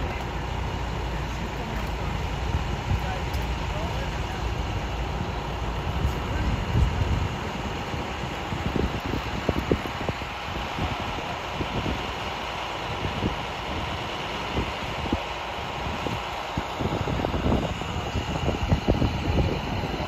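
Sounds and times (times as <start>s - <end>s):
fire engines idling: 0.0s - 20.0s
wind buffeting microphone: 0.0s - 20.0s.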